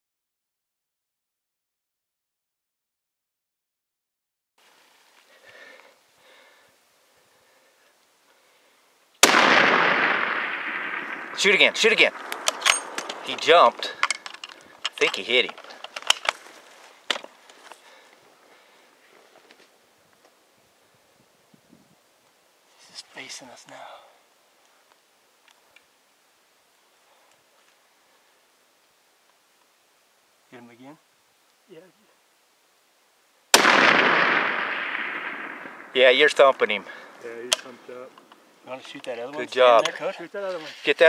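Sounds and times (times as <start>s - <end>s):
rifle shot: 9.2s - 14.3s, 33.5s - 37.8s.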